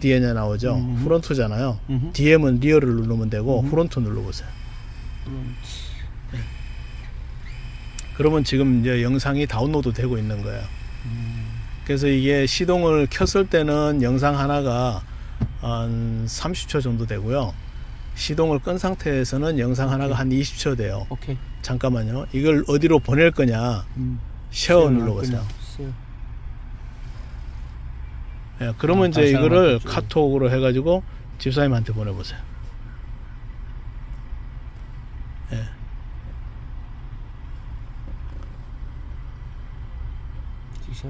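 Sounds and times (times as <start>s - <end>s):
car engine idling: 0.0s - 41.0s.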